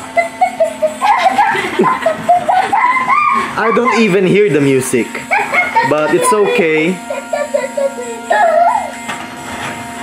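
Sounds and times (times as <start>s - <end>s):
toy electronic tune: 5.7s - 9.0s.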